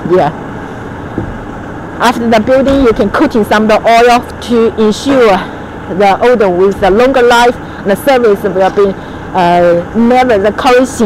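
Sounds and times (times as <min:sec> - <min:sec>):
low machinery rumble: 0:00.0 - 0:11.0.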